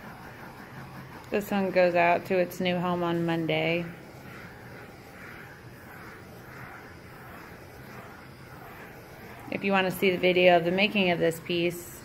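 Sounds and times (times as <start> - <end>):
butane torch hissing: 0.0 - 12.0.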